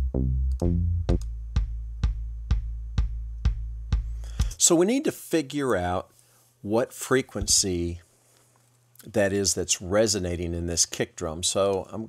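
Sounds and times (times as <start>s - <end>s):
electronic kick drum booming: 0.0s - 4.5s.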